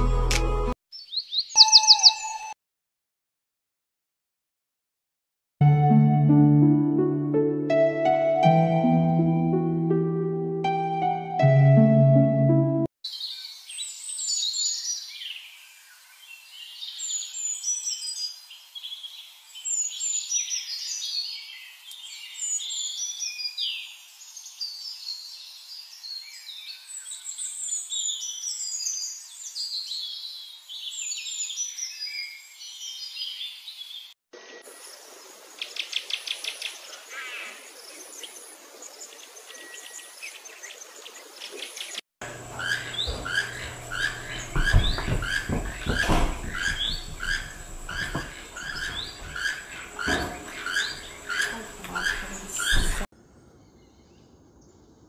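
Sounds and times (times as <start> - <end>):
birds chirping and singing: 0.9 - 2.6, 13.1 - 34.1, 35.6 - 54.9.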